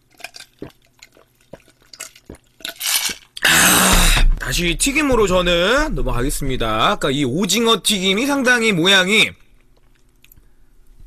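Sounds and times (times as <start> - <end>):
person gulping a drink: 0.0 - 4.3
loud burst of noise: 3.4 - 6.0.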